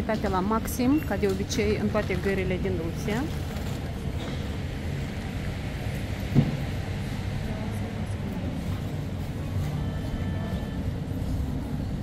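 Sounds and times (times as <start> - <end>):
railway station background rumble: 0.0 - 12.0.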